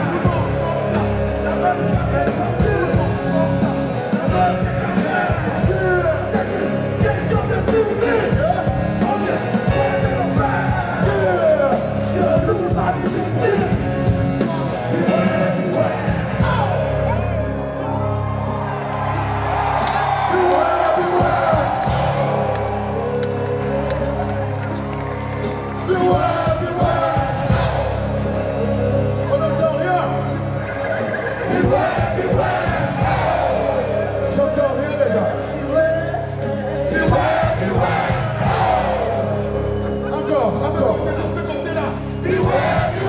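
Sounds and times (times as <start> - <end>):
crowd voices and cheers: 0.0 - 43.0
live band music: 0.0 - 43.0
steady bass line: 0.0 - 43.0.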